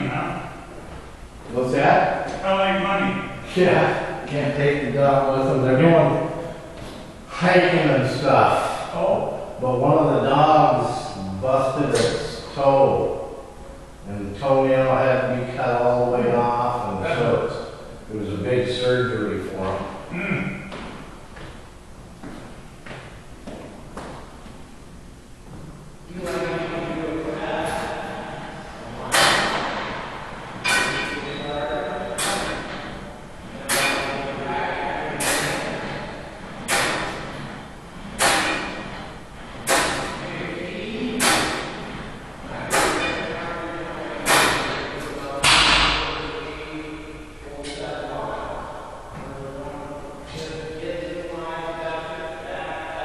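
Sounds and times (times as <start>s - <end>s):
people talking: 0.0s - 0.5s, 1.5s - 6.5s, 7.3s - 13.2s, 14.1s - 20.6s, 26.1s - 29.8s, 30.7s - 32.8s, 33.4s - 37.1s, 39.7s - 41.8s, 42.4s - 53.0s.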